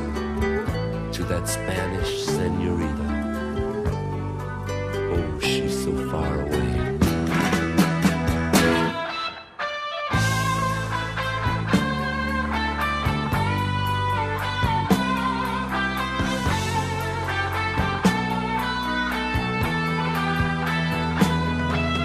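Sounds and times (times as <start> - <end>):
bass and drums: 0.0 - 9.4, 10.1 - 22.0
electric guitar lead: 0.0 - 22.0.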